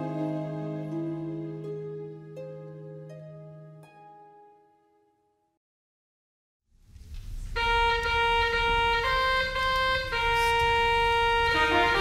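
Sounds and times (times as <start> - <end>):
low church room sound: 0.0 - 5.6, 6.7 - 12.0.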